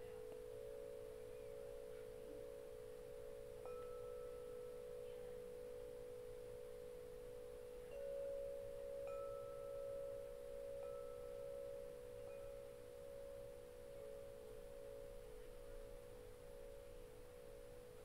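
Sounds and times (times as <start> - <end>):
soft meditation tones: 0.0 - 18.0.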